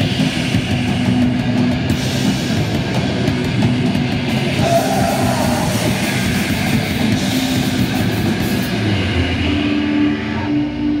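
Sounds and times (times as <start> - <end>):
bass guitar: 0.0 - 11.0
distorted electric guitar: 0.0 - 11.0
drums and cymbals: 0.0 - 11.0
punk band playing live: 0.0 - 11.0.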